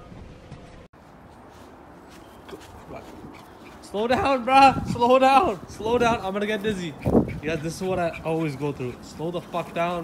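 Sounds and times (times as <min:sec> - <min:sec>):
quiet yard background: 0:00.0 - 0:10.0
man's voice: 0:03.8 - 0:10.0.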